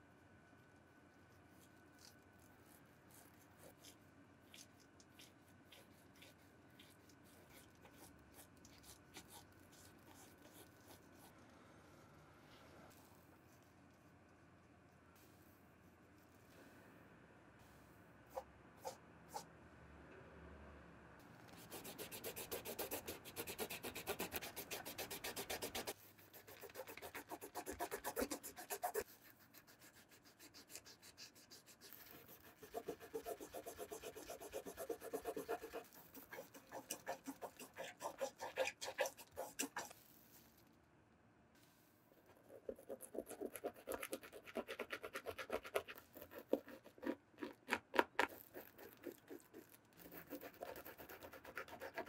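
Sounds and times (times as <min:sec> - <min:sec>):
scrubbing a rubber shoe sole: 0:01.5 - 0:11.3, 0:21.5 - 0:40.0, 0:42.4 - 0:52.0
eraser scrubbing leather sneaker: 0:21.6 - 0:39.9.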